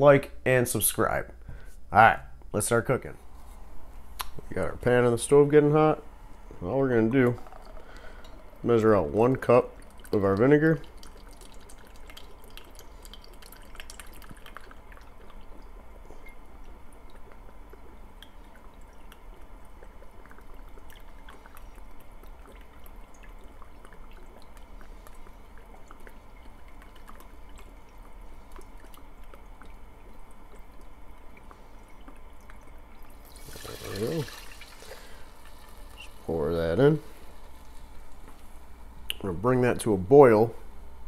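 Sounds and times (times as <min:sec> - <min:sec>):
liquid trickling into plastic cup: 0:07.1 - 0:38.6
liquid splashing into saucepan: 0:09.7 - 0:16.4, 0:30.6 - 0:36.3.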